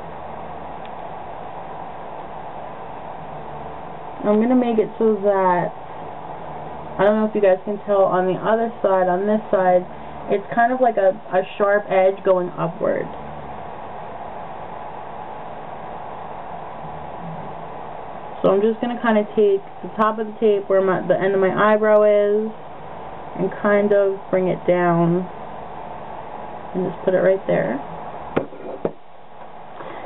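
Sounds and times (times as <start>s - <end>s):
steady background hiss: 0.0s - 30.0s.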